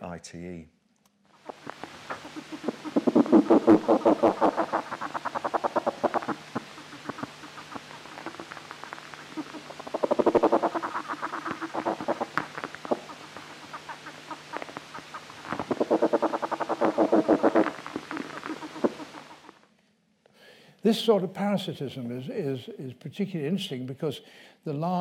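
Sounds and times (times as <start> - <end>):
rapid insect pulses: 1.3 - 19.6.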